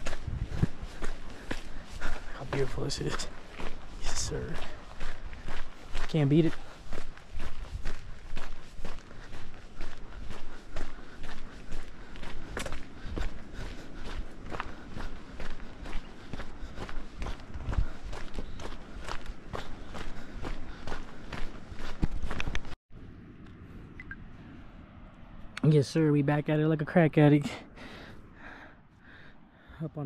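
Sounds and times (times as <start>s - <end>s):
footsteps crunching on gravel: 0.0s - 22.8s.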